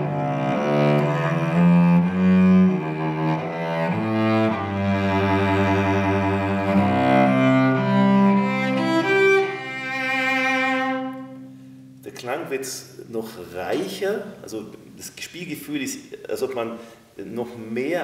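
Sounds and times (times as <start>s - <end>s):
bowed cello melody: 0.0s - 12.1s.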